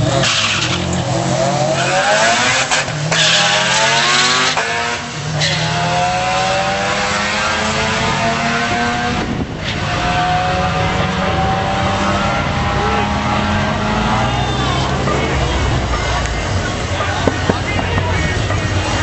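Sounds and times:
cars accelerating hard with gear shifts: 0.0s - 19.0s.

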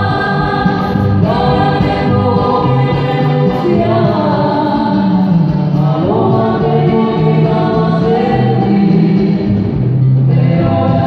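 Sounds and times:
live band through speakers: 0.0s - 11.0s
people singing: 0.0s - 11.0s.

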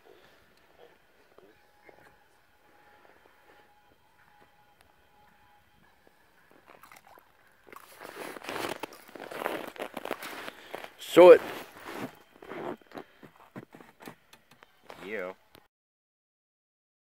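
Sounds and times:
faint background music: 0.0s - 15.7s
crunching and scraping of ice: 6.4s - 14.1s.

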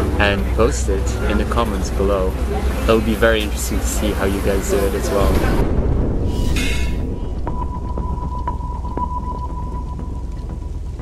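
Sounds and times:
faint rain patter: 0.0s - 6.3s, 7.0s - 11.0s
low thunder rumble: 3.5s - 11.0s.

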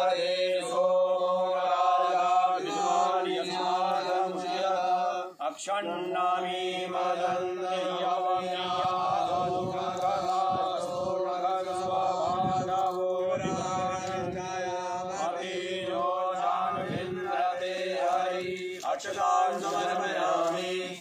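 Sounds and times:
men chanting: 0.0s - 21.0s.

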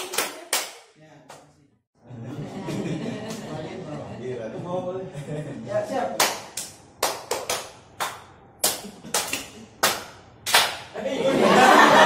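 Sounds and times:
single hand claps: 6.2s - 10.9s.

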